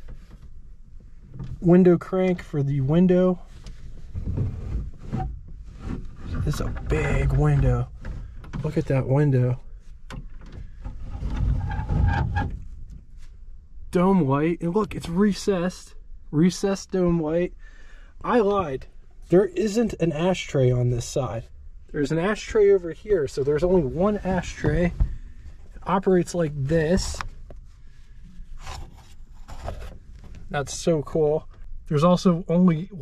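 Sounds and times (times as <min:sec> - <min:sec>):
car window glass scraping: 0:10.8 - 0:12.6.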